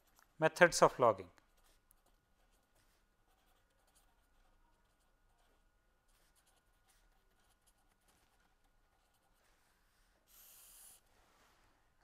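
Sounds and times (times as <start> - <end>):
pen scratching on paper: 0.0 - 0.2, 1.4 - 11.0.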